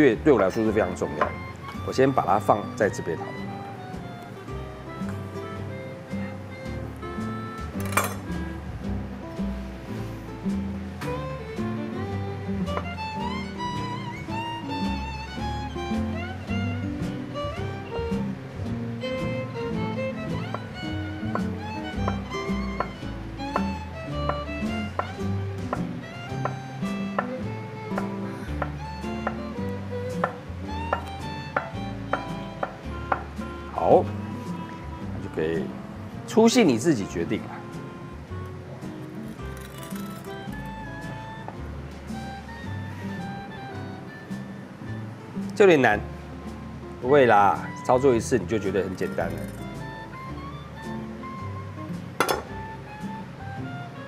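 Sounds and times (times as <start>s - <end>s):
background music: 0.0s - 54.0s
knife tapping on cutting board: 21.3s - 22.2s, 22.8s - 27.3s, 27.9s - 29.4s, 30.2s - 33.3s, 52.2s - 52.6s.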